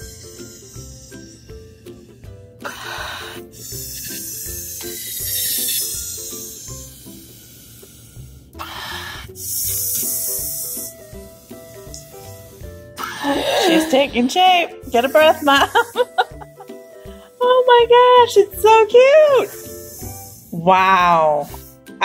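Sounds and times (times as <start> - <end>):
person blowing into balloon: 0.0 - 14.1, 14.7 - 17.8, 19.3 - 20.6, 21.4 - 22.0
background music: 0.0 - 22.0.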